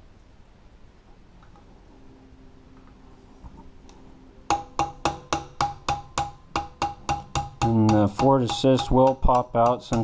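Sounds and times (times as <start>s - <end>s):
hammer tapping metal punch: 4.5s - 10.0s.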